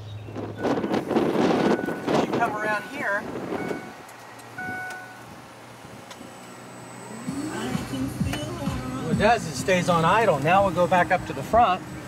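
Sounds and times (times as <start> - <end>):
short high beeps: 3.6 - 4.0, 4.6 - 5.2
electric motor spinning up: 6.3 - 9.0.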